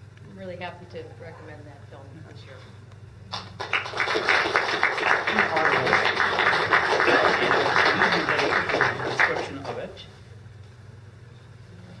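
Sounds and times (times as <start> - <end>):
audience applauding: 3.3 - 9.9.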